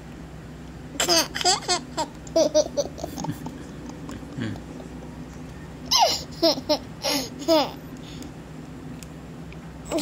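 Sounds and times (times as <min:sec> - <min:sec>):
small child laughing: 0:01.0 - 0:03.6, 0:05.9 - 0:07.8.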